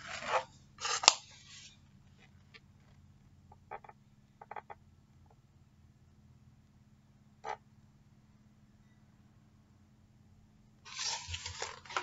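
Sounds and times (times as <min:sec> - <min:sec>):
faint steady hum: 0:00.0 - 0:12.0
book rustling and knocking: 0:10.9 - 0:12.0.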